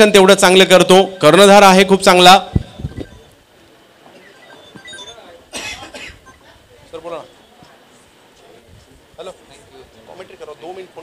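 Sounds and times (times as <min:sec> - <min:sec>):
faint background voices: 0:02.6 - 0:11.0
person coughing: 0:05.6 - 0:06.2.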